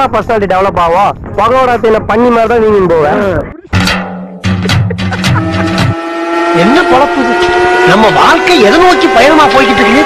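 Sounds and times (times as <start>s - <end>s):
steady electronic tone: 3.8s - 10.0s.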